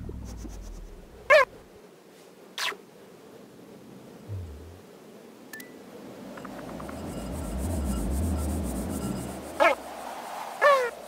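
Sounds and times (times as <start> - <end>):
low rubbing rumble: 0.0 - 1.7, 4.3 - 4.8, 6.8 - 9.6.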